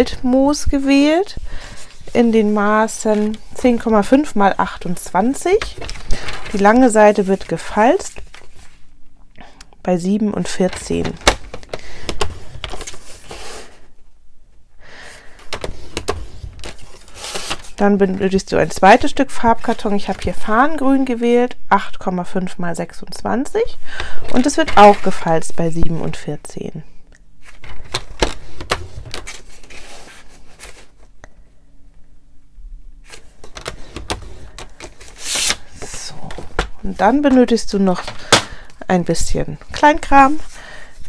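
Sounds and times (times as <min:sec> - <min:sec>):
cardstock rustling: 0:01.3 - 0:08.8, 0:33.1 - 0:38.6
card sliding: 0:33.1 - 0:35.9.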